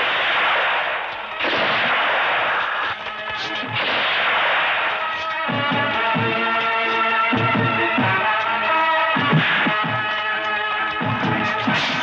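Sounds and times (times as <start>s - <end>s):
gunfire and blast effects: 0.0s - 8.0s, 9.2s - 10.2s, 11.0s - 12.0s
background music score: 0.0s - 12.0s.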